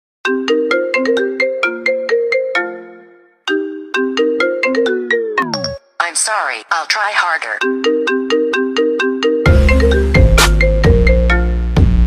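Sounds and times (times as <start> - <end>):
marimba phone ringtone: 0.3 - 5.8, 7.6 - 11.4.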